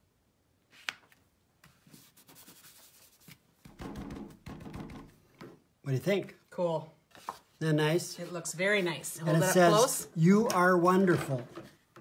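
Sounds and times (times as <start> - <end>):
paper rubbing and rustling: 1.6 - 3.6.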